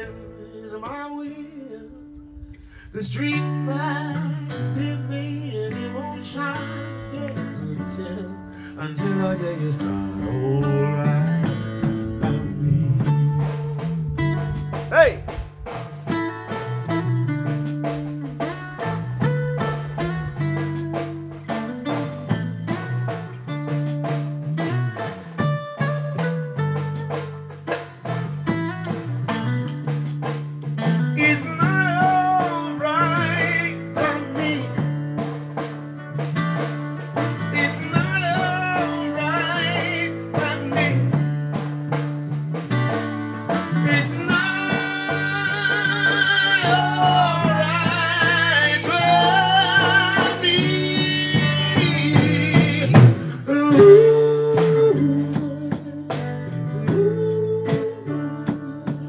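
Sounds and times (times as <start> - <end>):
band playing slow blues-soul: 0.0 - 59.0
person singing with vibrato: 31.2 - 34.8, 43.7 - 59.0.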